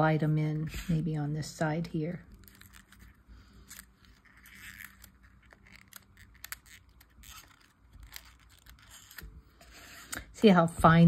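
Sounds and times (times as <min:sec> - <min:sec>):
light scraping on paper: 0:02.3 - 0:10.7.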